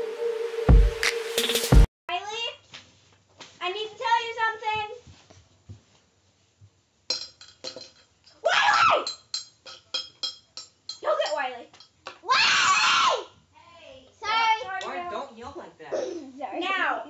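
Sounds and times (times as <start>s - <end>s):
light clinks: 7.1s - 12.1s
girl shouting: 8.4s - 9.1s, 12.2s - 15.0s.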